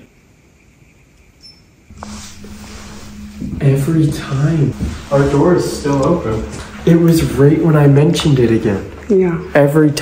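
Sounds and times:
steady low hum: 1.9s - 10.0s.

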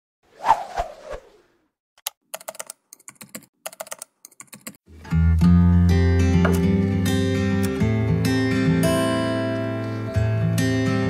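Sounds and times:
computer keyboard typing: 2.0s - 4.8s.

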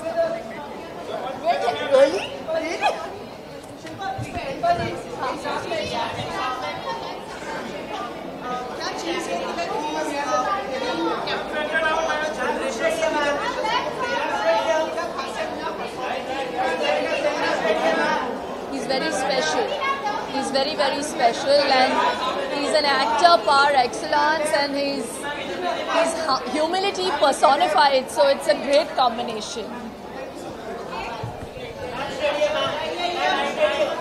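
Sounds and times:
overlapping chatter of voices: 0.0s - 34.0s.

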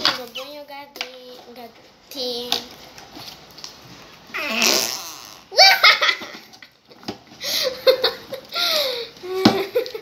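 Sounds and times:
children laughing: 5.5s - 6.7s, 7.4s - 10.0s.

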